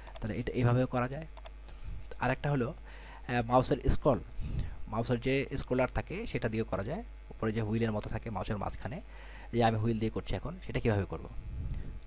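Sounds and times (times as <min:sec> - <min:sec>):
computer mouse double click: 0:00.0 - 0:00.2.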